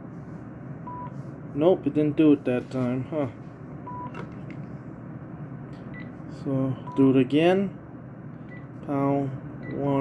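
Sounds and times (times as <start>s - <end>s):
phone key-press beep: 0.9s - 1.1s.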